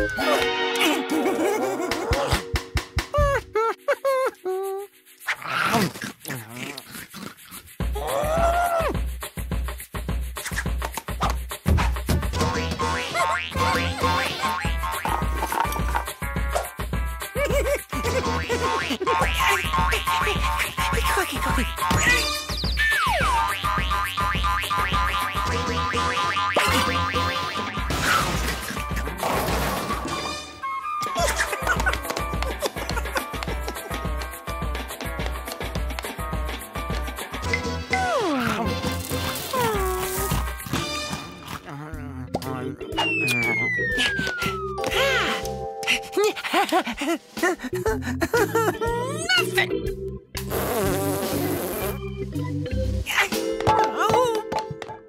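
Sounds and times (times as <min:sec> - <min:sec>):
backing music: 0:00.0 - 0:03.6
bass line background music: 0:07.8 - 0:29.3, 0:29.9 - 0:46.1, 0:47.5 - 0:54.3
cartoon falling whistle glide: 0:22.5 - 0:23.4.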